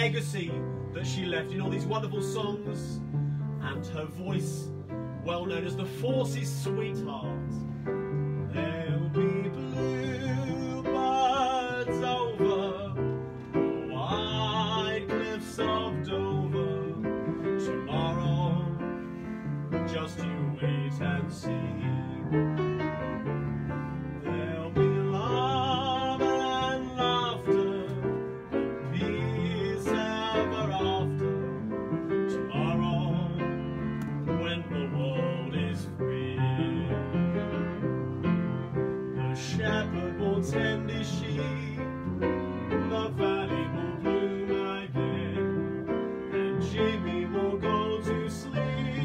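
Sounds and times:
upright piano playing chords: 0:00.0 - 0:49.0.

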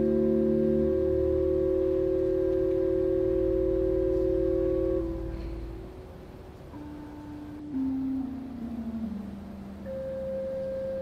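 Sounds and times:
pipe organ playing softly: 0:00.0 - 0:11.0.

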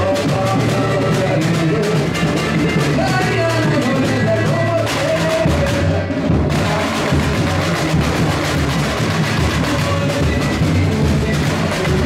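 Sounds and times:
samba drum and percussion: 0:00.0 - 0:12.0.

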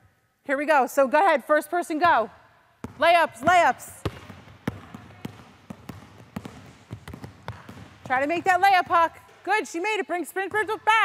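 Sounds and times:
basketball bouncing on wooden floor: 0:02.8 - 0:11.0.

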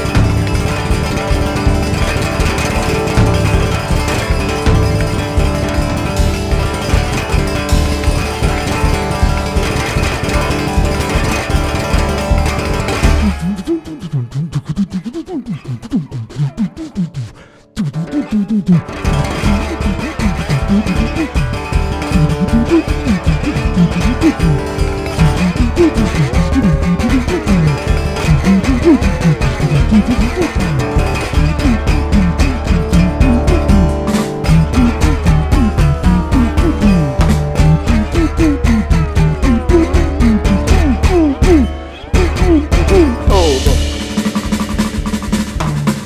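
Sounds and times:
instrumental rock music: 0:00.0 - 0:14.3, 0:16.0 - 0:46.0
electric guitar: 0:00.0 - 0:46.0
electronic drum beat with cymbals: 0:00.0 - 0:46.0.

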